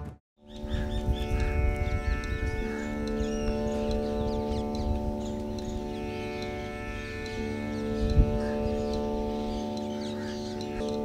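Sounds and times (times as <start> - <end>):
birds chirping: 0.4 - 11.0
steady drone: 0.6 - 11.0.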